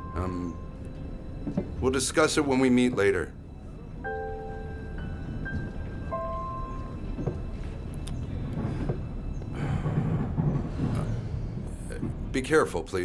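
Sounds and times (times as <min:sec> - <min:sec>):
belongings rustling and knocking: 0:00.0 - 0:03.5, 0:04.2 - 0:13.0
train carriage rumble: 0:00.0 - 0:13.0.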